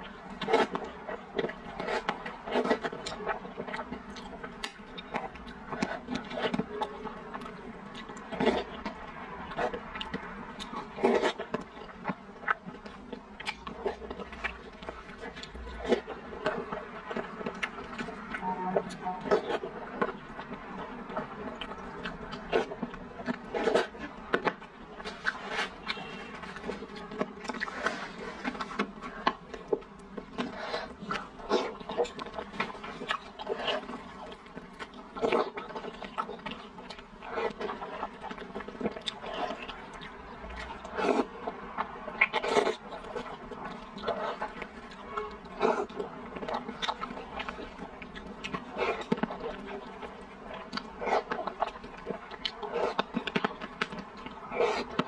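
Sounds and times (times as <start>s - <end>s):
person chewing and slurping noodles: 0.0s - 55.0s.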